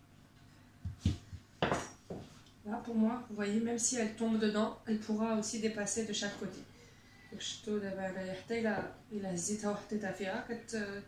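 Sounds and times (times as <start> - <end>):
rolling pin knocking on tart tin: 0.9 - 1.9
woman speaking: 2.6 - 6.7, 7.3 - 11.0.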